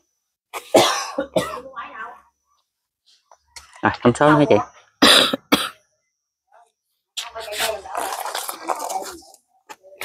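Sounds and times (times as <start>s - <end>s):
person coughing: 0.6s - 1.7s, 5.0s - 5.8s.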